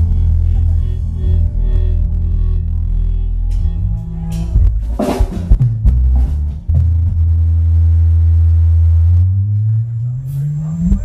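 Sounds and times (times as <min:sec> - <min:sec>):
bass note sliding upward: 0:00.0 - 0:11.0.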